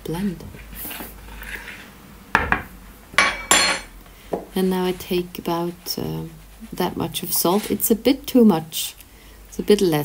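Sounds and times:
spoon stirring flour in bowl: 4.6s - 8.9s.

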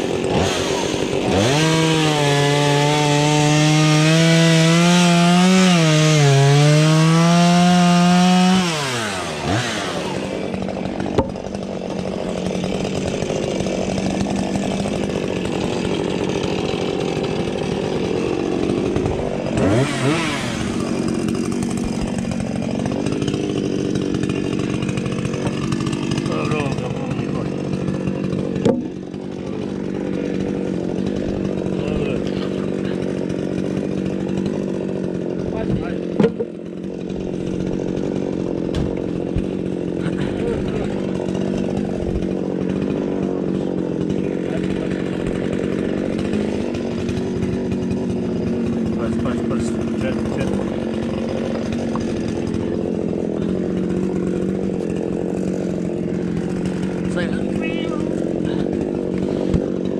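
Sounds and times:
chainsaw idling: 0.0s - 59.9s.

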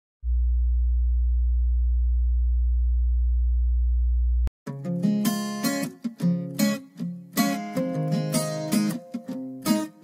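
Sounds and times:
deep electronic hum: 0.2s - 4.5s.

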